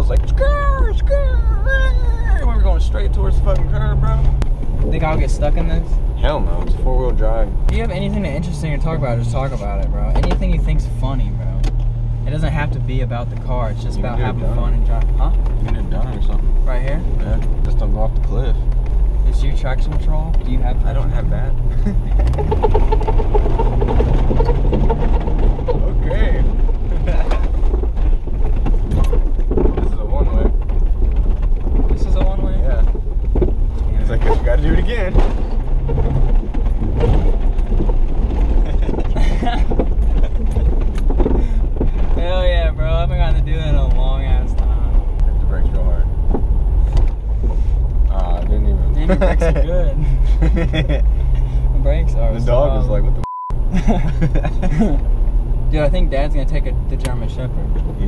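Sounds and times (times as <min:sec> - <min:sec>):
car engine and road drone: 0:00.0 - 0:58.0
voices and laughter: 0:21.5 - 0:22.5, 0:26.7 - 0:27.6, 0:38.4 - 0:41.0, 0:48.8 - 0:51.6, 0:53.7 - 0:55.2.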